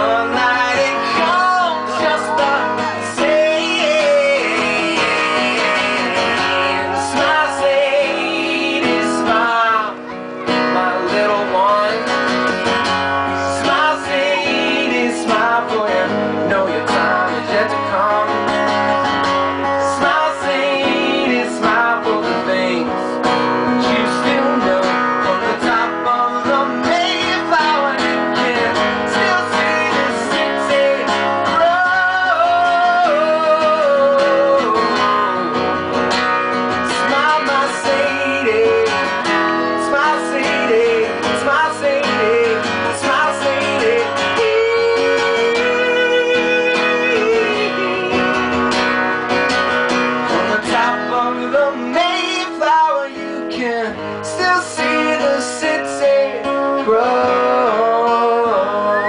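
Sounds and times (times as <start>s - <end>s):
man singing: 0.0s - 48.9s, 50.2s - 59.0s
acoustic guitar strumming: 0.0s - 59.0s.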